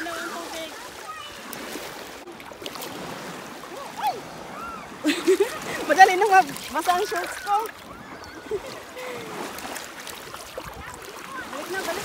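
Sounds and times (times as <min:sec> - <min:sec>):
small water splashes: 0:00.0 - 0:12.0
water sloshing around wading legs: 0:00.0 - 0:12.0.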